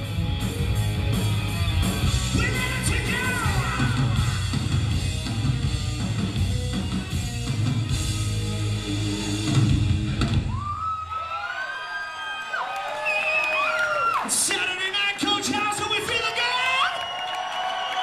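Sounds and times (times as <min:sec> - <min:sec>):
rock band playing live: 0:00.0 - 0:10.7.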